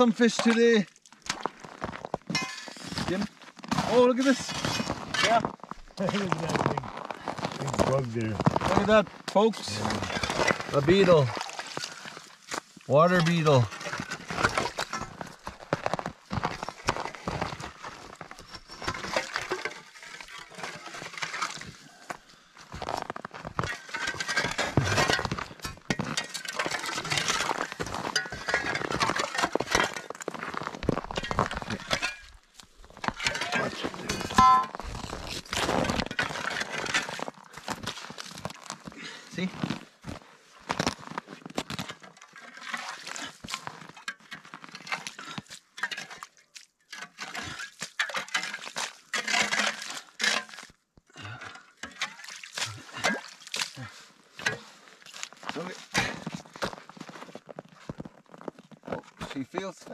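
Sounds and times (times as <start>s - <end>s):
crunching and scraping ice: 0.0s - 59.9s.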